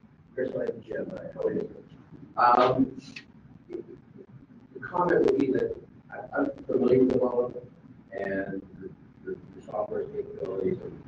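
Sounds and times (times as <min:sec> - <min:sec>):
person talking indistinctly: 0:00.4 - 0:11.0.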